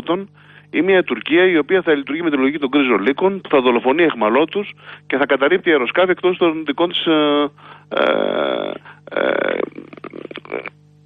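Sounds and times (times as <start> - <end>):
man's creaky hesitation sounds: 7.9 - 10.8.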